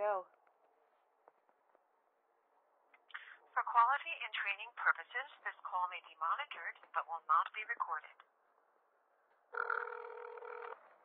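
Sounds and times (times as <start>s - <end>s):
telephone ringback tone: 9.6s - 10.8s.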